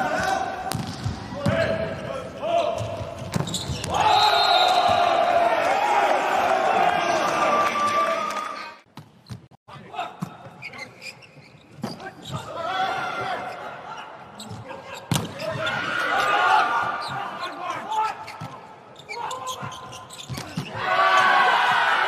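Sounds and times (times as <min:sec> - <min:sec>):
players shouting: 0:03.8 - 0:08.6, 0:15.4 - 0:18.3, 0:20.6 - 0:22.0.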